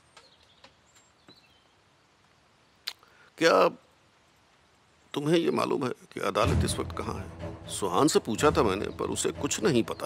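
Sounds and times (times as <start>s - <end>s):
faint birds chirping: 0.0s - 10.0s.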